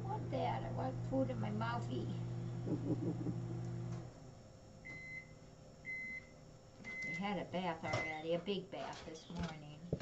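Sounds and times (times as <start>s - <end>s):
electric appliance hum: 0.0s - 10.0s.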